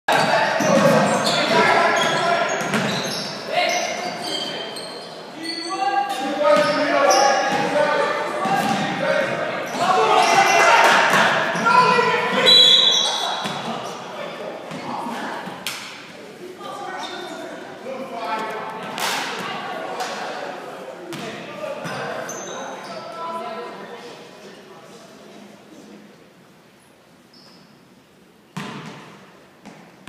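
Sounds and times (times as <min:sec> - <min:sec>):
shoe squeaks: 0:00.1 - 0:07.5, 0:12.4 - 0:13.3, 0:21.8 - 0:23.2, 0:27.3 - 0:27.9
people calling out: 0:05.4 - 0:13.9.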